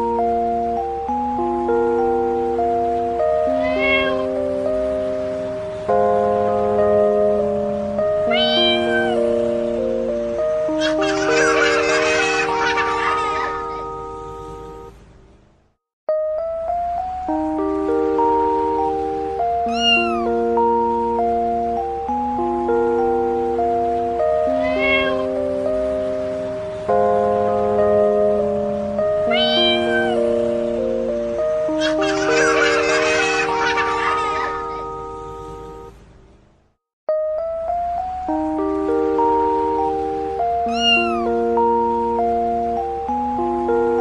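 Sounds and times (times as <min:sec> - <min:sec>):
music with sustained chords: 0:00.0 - 0:15.0, 0:16.1 - 0:36.1, 0:37.1 - 0:44.0
cat meowing: 0:03.4 - 0:04.4, 0:08.2 - 0:09.3, 0:19.6 - 0:20.4, 0:24.4 - 0:25.4, 0:29.2 - 0:30.3, 0:40.6 - 0:41.4.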